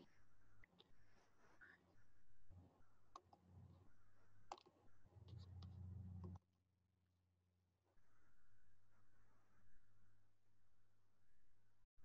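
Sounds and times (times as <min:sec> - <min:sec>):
low steady hum: 0:02.0 - 0:06.4.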